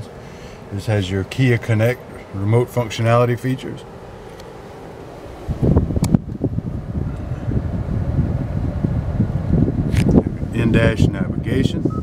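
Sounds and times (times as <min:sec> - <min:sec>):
wind buffeting microphone: 0:04.5 - 0:12.0.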